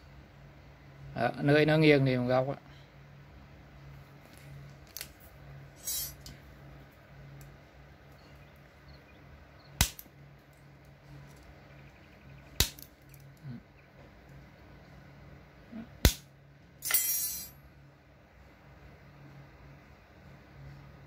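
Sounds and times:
short metallic rattle: 5.8s - 6.4s, 16.8s - 17.6s.

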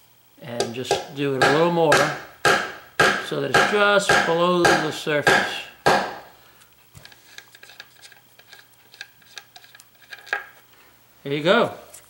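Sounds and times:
hammer tapping metal: 0.6s - 6.3s.

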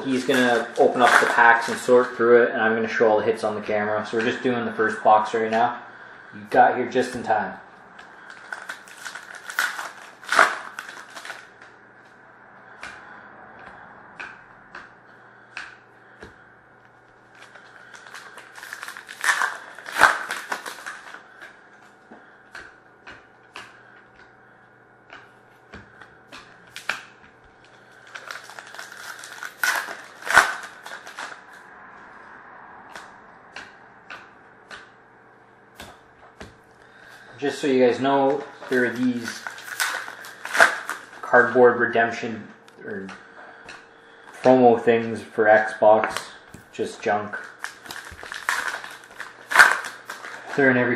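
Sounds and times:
foil wrappers tearing and crinkling: 0.0s - 2.1s, 8.2s - 11.6s, 17.4s - 21.5s, 27.8s - 31.6s, 36.9s - 41.6s, 47.3s - 50.9s
cards clicking and tapping: 13.6s - 14.9s, 17.4s - 24.3s, 25.1s - 31.3s, 32.9s - 34.9s.

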